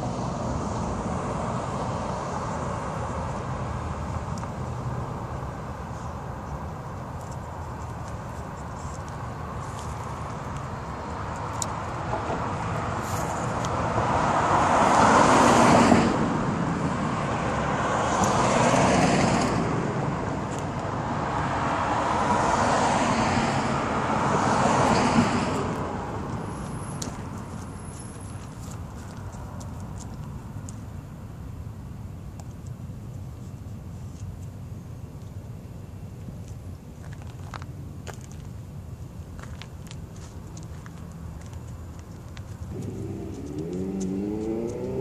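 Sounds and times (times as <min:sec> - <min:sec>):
vehicles passing: 0:00.0 - 0:45.0.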